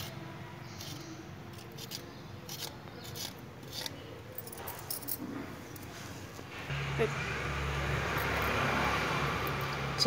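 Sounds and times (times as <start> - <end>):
bangles clinking: 0.8 - 5.9.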